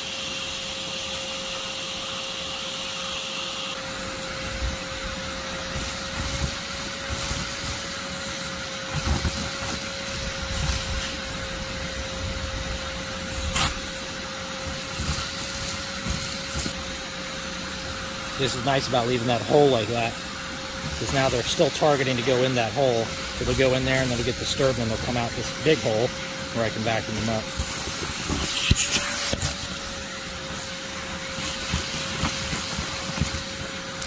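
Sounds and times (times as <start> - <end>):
vacuum whining: 0.0 - 34.0
high hiss: 4.5 - 34.0.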